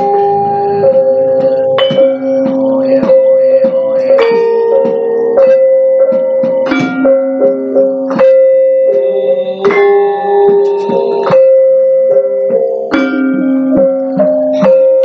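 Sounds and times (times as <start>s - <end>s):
gamelan ensemble playing: 0.0s - 15.0s.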